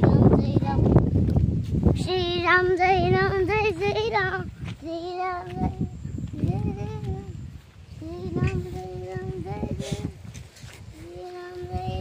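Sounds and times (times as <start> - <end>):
child singing in a high voice: 0.0 - 1.0, 1.9 - 12.0.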